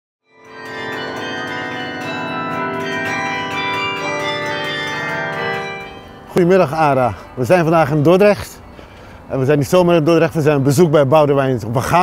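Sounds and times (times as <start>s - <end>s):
carillon bells playing a melody: 0.3s - 8.7s.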